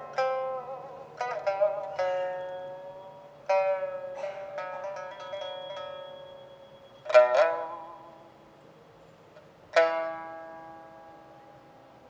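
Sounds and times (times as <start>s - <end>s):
pipa plucked notes: 0.0s - 8.7s, 9.3s - 12.0s.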